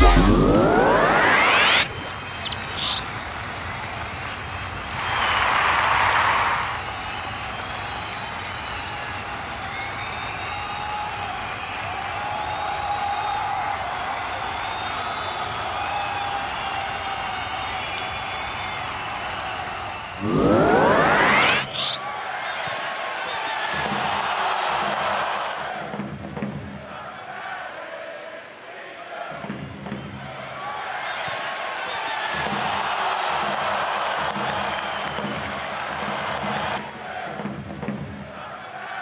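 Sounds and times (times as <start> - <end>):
stadium crowd din: 0.0 - 39.0.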